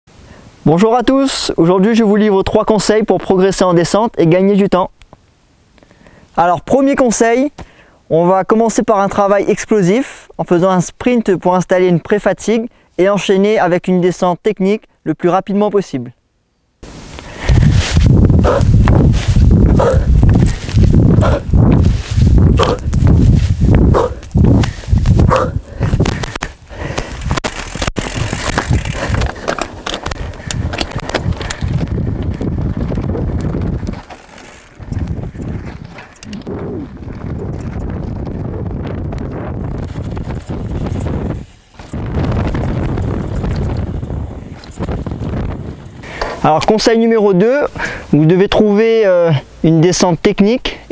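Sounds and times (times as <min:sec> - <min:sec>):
rushing noise of riding: 0:16.8 - 0:46.6
hard rhythmic breathing: 0:17.2 - 0:27.3, 0:28.8 - 0:32.6, 0:46.0 - 0:46.4, 0:47.7 - 0:48.2.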